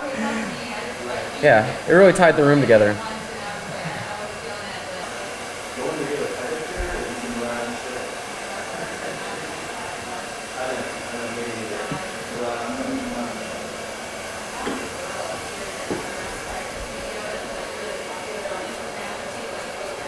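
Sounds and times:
hair dryer blowing: 0.0 - 20.0.

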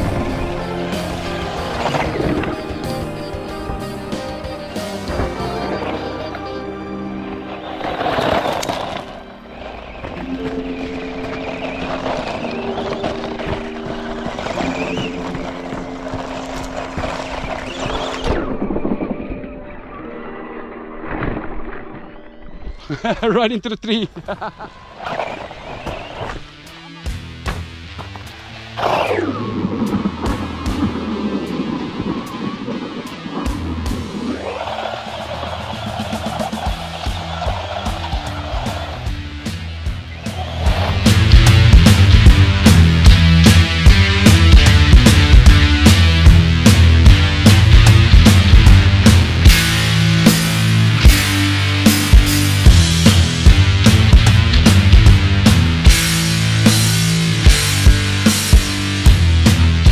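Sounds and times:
background music with held chords: 0.0 - 7.8, 38.7 - 59.9.

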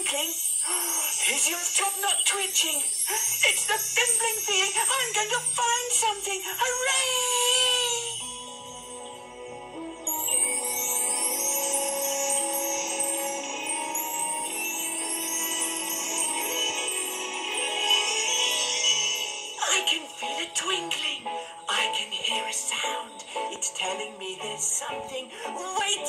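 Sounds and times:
twinkling chime glides: 0.0 - 24.0
children's tv theme music: 0.0 - 26.0.

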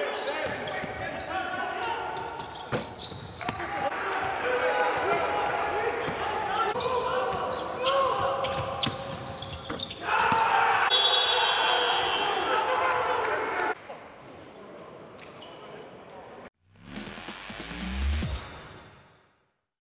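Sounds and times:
sneaker squeaks: 0.1 - 3.9, 5.6 - 11.3, 15.2 - 16.5
outro music: 16.7 - 19.3.

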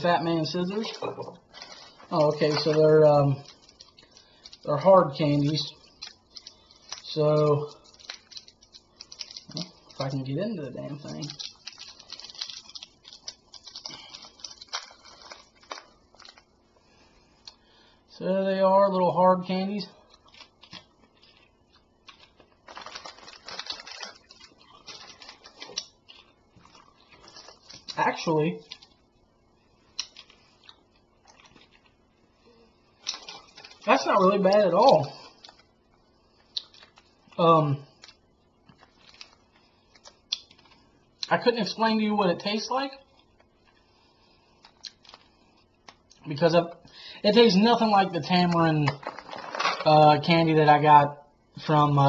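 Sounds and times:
plastic wrapper crinkling: 0.0 - 16.7, 20.1 - 29.1, 29.9 - 32.1, 33.0 - 37.4, 38.0 - 41.9, 42.5 - 46.4, 47.4 - 50.0.

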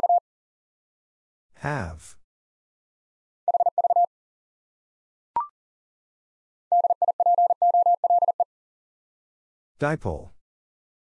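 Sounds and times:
morse code beeps: 3.5 - 4.1, 6.7 - 8.5.

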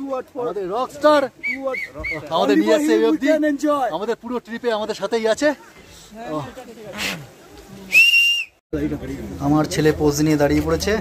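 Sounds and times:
short high whistle: 7.9 - 8.6.

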